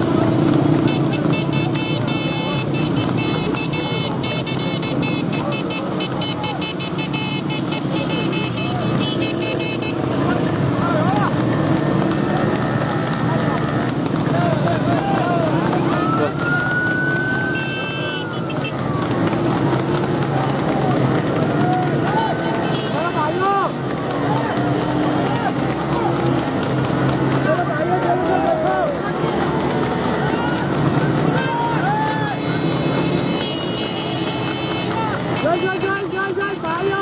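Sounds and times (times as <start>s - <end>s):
motorcycle and car engines: 0.0s - 37.0s
men shouting and whooping: 10.7s - 37.0s.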